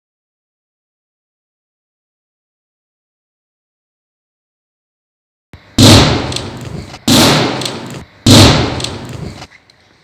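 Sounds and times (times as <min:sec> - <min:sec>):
loud booming bangs: 0:05.8 - 0:09.5.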